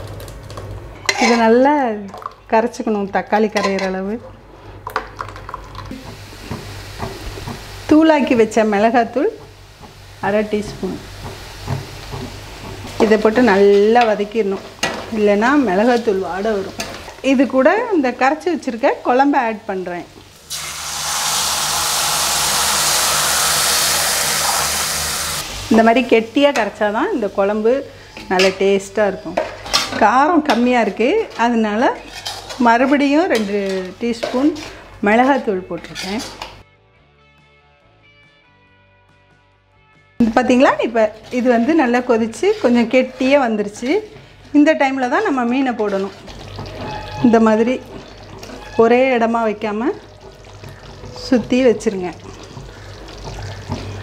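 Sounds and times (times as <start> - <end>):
faint frying hiss: 5.8 - 35.4, 40.2 - 54.0
paste sizzling in hot oil: 5.9 - 17.5, 19.6 - 26.4, 45.2 - 54.0.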